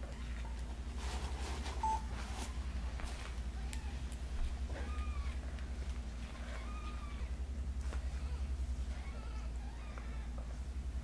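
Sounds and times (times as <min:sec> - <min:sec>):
soft rustling: 0:00.1 - 0:10.7.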